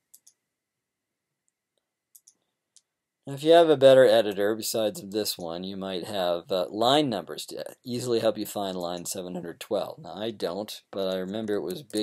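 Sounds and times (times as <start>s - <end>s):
computer mouse clicks: 0.0s - 0.4s, 1.5s - 2.9s.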